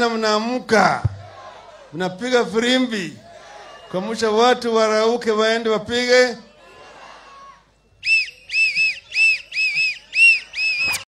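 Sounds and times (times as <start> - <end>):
shrill whistle blasts: 7.9 - 11.0.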